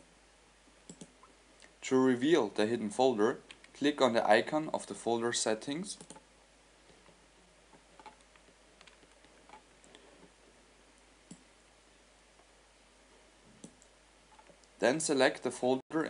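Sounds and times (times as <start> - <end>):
low room noise: 0.0 - 16.0
computer mouse clicks: 0.9 - 1.3, 6.0 - 6.3, 8.0 - 10.0, 11.3 - 11.5, 13.6 - 14.6.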